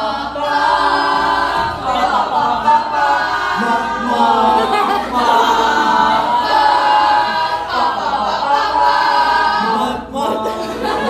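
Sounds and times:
group singing unaccompanied: 0.0s - 11.0s.

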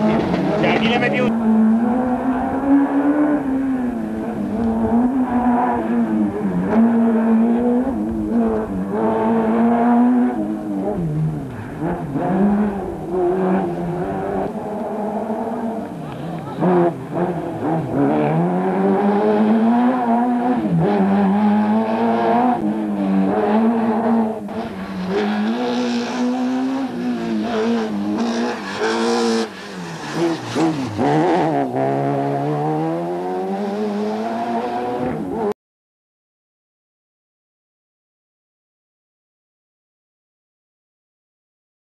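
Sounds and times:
rally car engine revving: 0.0s - 35.6s.

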